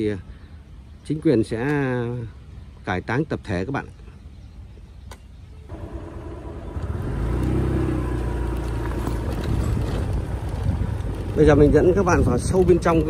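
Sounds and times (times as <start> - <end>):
single click: 5.0 - 5.3
vehicle engine running: 5.7 - 11.8.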